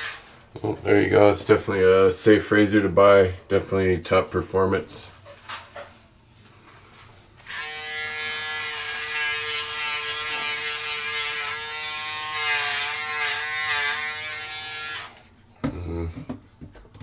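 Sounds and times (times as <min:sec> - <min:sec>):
electric shaver buzzing: 0:07.5 - 0:15.2.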